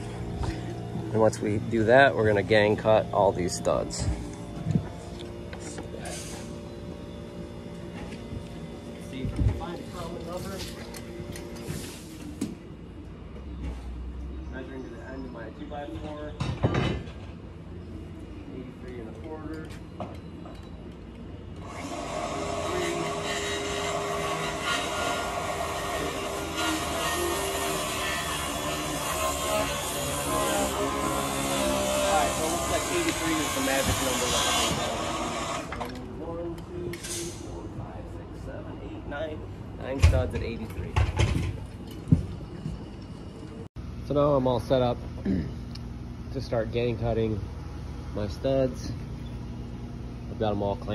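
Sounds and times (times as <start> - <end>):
loud steady machine noise: 0.0 - 12.3, 21.5 - 36.6.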